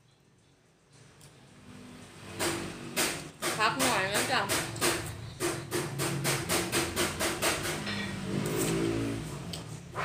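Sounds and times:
rapid even knocking: 2.4 - 7.9.

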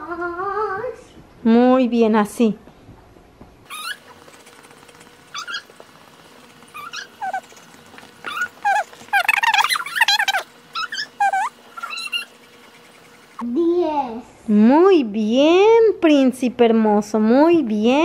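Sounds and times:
pet whining cries: 3.7 - 13.4.

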